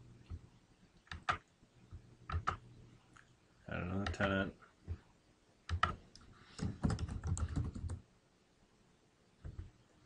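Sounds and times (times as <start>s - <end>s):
typing on keyboard: 1.1s - 1.4s, 5.7s - 6.0s, 6.6s - 8.0s.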